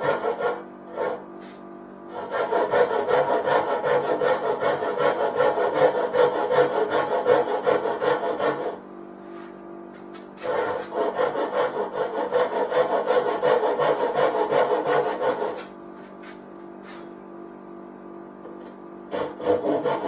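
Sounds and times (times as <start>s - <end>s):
hand tool cutting wood: 0.0s - 8.8s, 10.2s - 17.0s, 19.1s - 20.0s.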